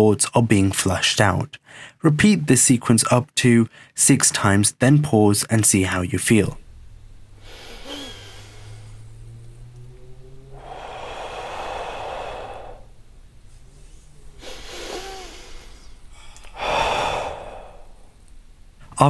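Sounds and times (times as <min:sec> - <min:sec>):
man breathing audibly: 0:01.6 - 0:02.0, 0:03.7 - 0:04.0, 0:07.3 - 0:09.4, 0:10.5 - 0:18.3.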